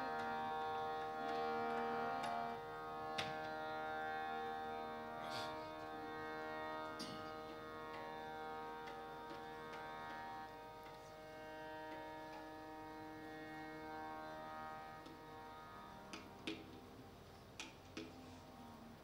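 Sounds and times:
harmonium held notes: 0.0 - 19.0.

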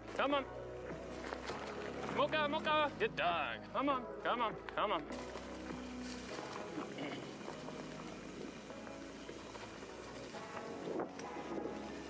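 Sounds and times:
bike tyres rolling over dry leaves: 0.0 - 3.0, 5.1 - 12.0.

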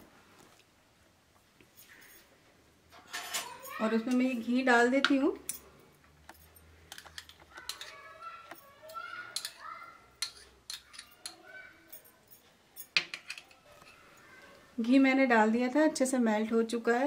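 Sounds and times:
spoon clinking on pan: 9.3 - 9.6.

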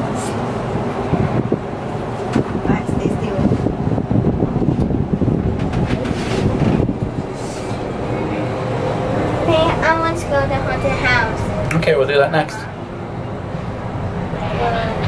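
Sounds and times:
gondola rumbling and rattling: 0.0 - 15.0
knocks and clatter: 4.7 - 7.0.

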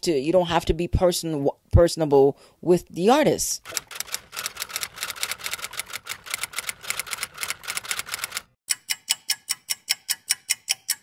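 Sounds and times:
rapid sharp clicks: 3.6 - 8.6.

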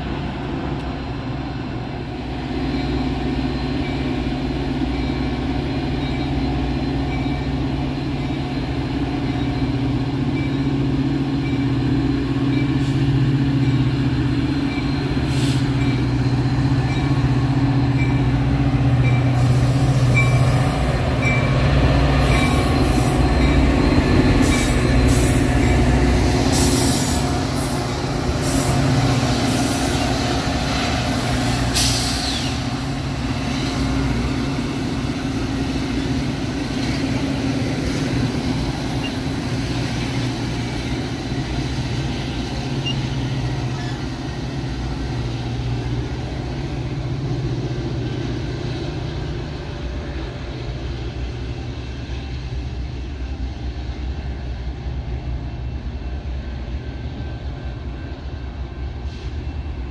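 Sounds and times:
diesel locomotive passing: 0.0 - 59.9
passenger coaches rumbling: 0.0 - 59.9
wheels and brakes squealing: 22.2 - 32.8, 37.9 - 41.0, 42.4 - 44.4.

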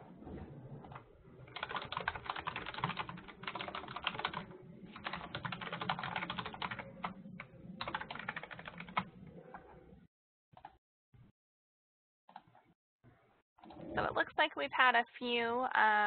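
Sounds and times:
computer keyboard typing: 1.4 - 9.6, 10.6 - 10.8.

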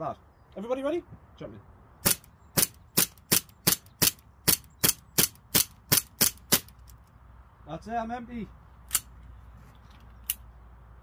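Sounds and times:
air pistol firing sharp cracks: 2.0 - 6.8.

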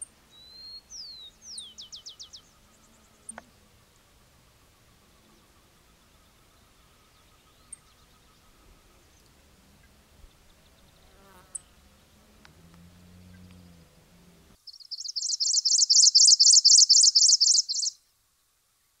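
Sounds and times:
faint outdoor ambience: 0.0 - 19.0
rapid high chirps: 14.7 - 18.0.

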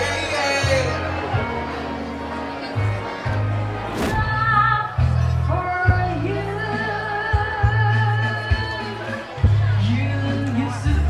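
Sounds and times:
karaoke backing track: 0.0 - 11.0
woman singing into microphone: 4.2 - 9.1.

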